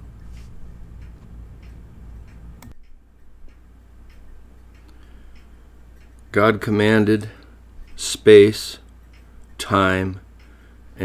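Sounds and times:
faint clock-like ticking: 0.0 - 11.0
low steady hum: 0.0 - 11.0
click: 0.4 - 6.2.

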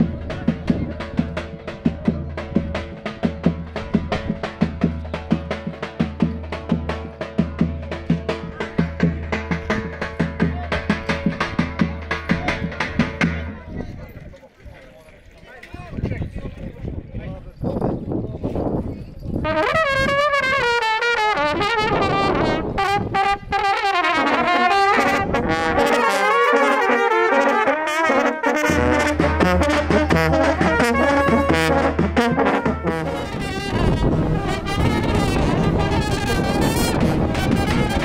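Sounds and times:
brass band marching: 0.0 - 13.6, 19.4 - 38.0
crowd noise: 0.0 - 38.0.

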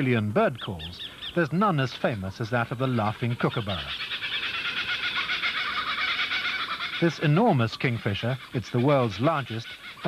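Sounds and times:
kookaburra laughing call: 2.9 - 10.0.

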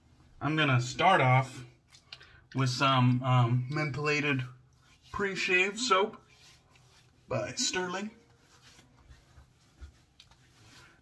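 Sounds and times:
hands rubbing a bearded face: 4.8 - 11.0.

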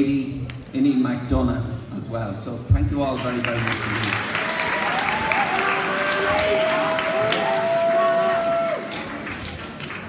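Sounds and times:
audience applauding and cheering: 3.2 - 10.0.

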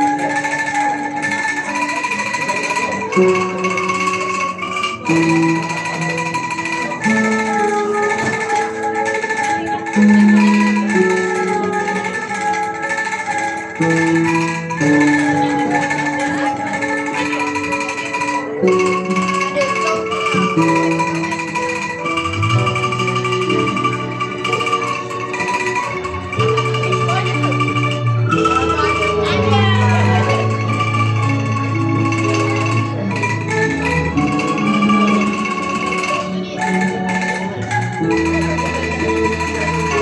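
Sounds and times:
bamboo angklung melody: 0.0 - 40.0.

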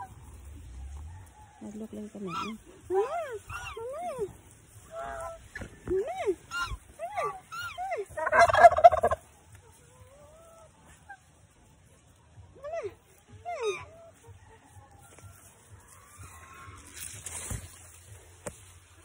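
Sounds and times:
geese honking: 0.0 - 5.7, 6.3 - 11.5
turkey gobbling: 0.0 - 5.7, 6.3 - 11.7.

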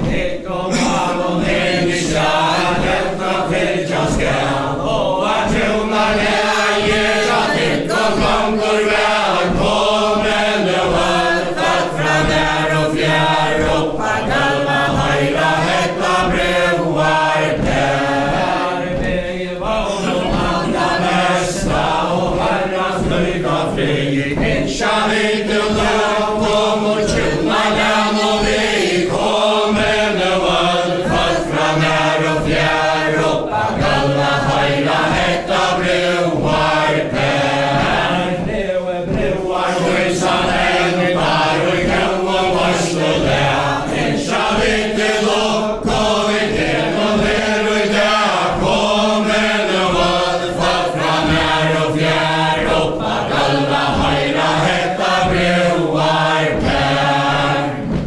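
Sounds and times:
feet stepping on wooden floor: 0.0 - 58.0
group singing unaccompanied: 0.0 - 58.0.

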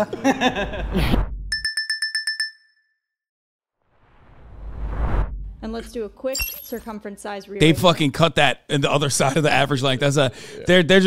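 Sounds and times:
rising whoosh: 3.9 - 5.8
fast electronic beeps: 6.3 - 6.9.

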